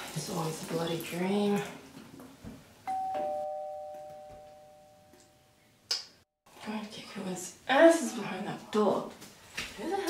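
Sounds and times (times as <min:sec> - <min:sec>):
two-note doorbell chime: 0:02.9 - 0:05.5.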